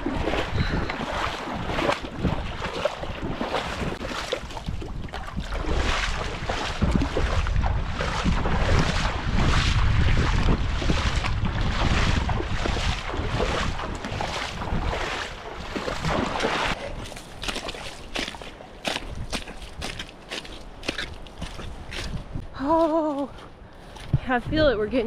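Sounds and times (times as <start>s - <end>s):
wind buffeting microphone: 0.0s - 20.0s, 20.8s - 25.0s
footsteps wading through water: 0.0s - 25.0s.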